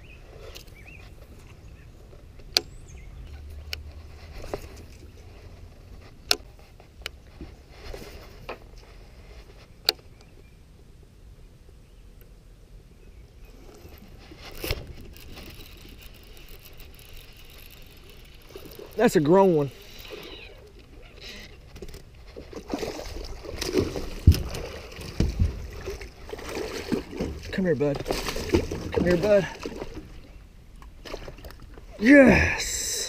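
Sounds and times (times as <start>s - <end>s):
fishing reel clicks and knocks: 14.6s - 20.2s.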